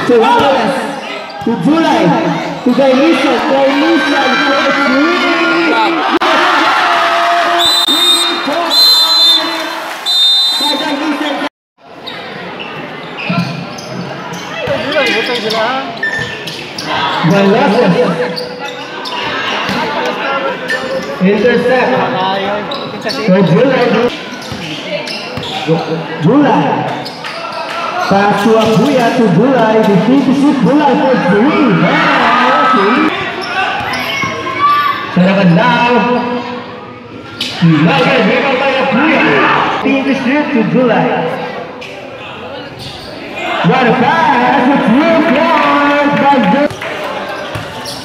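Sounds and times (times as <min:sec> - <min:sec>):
commentator talking: 0:00.0 - 0:06.2, 0:28.1 - 0:33.2, 0:37.6 - 0:41.5, 0:43.6 - 0:46.7.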